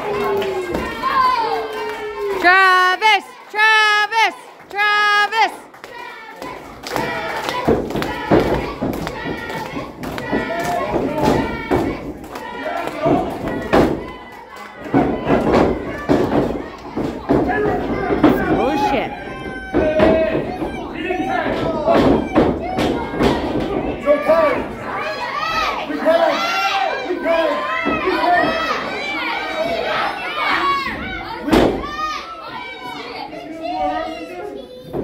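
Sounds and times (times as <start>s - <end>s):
voices shouting and talking: 0.0s - 35.0s.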